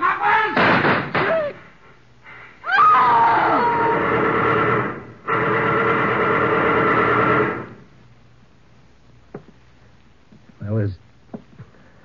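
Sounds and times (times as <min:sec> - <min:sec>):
machine-gun fire: 0:00.6 - 0:01.4, 0:03.7 - 0:07.9.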